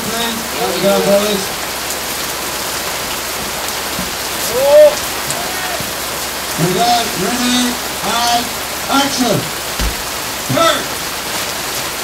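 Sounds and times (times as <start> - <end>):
heavy rain on gravel roof: 0.0 - 12.0
person shouting: 0.4 - 1.4, 4.5 - 5.9.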